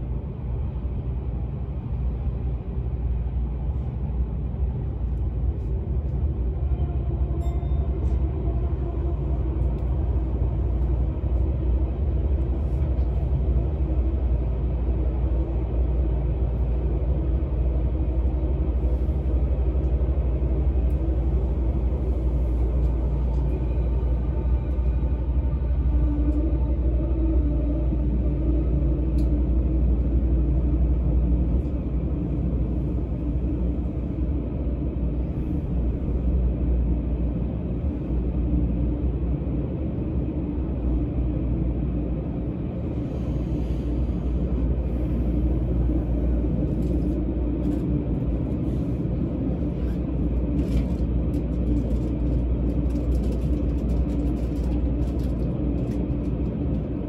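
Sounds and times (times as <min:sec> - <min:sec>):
train wheels rumbling in tunnel: 0:00.0 - 0:57.0.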